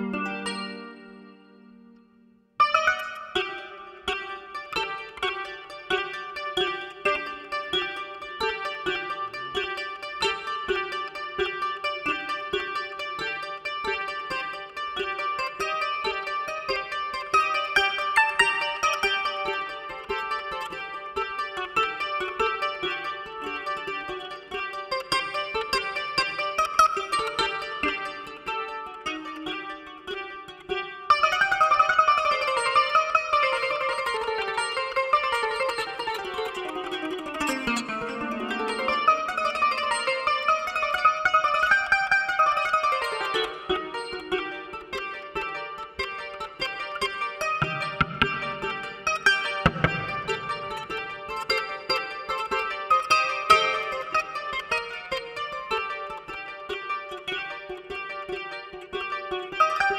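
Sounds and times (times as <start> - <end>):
kora plucked: 0.0 - 59.9.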